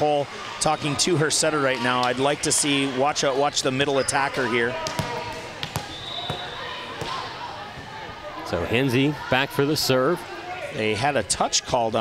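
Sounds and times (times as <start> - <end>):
volleyball bouncing on court floor: 4.7 - 7.3.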